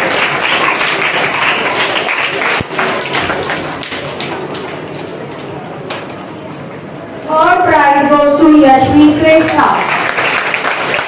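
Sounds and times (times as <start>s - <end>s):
audience clapping: 0.0s - 6.2s, 9.3s - 11.0s.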